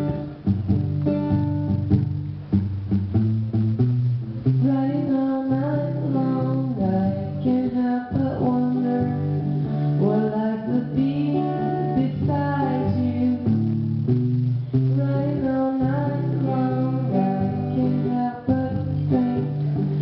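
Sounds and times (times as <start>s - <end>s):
acoustic guitar: 0.0s - 20.0s
woman singing: 4.6s - 13.7s, 14.9s - 20.0s.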